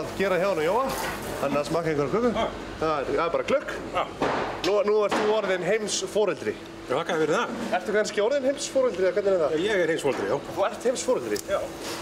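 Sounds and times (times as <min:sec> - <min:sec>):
men talking: 0:00.0 - 0:11.8.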